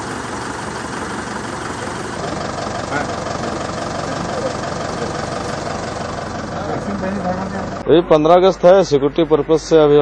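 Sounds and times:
large vehicle engine idling: 0:00.0 - 0:10.0.

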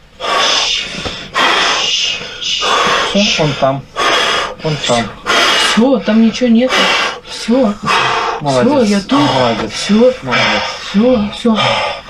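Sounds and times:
man breathing heavily: 0:00.1 - 0:12.0.

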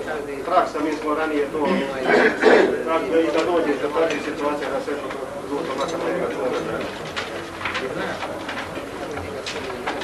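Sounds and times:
men's voices murmuring: 0:00.0 - 0:10.0.

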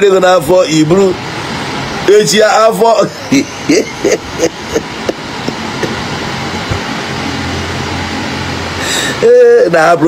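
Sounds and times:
even hiss: 0:00.0 - 0:10.0
low hum: 0:00.0 - 0:10.0.

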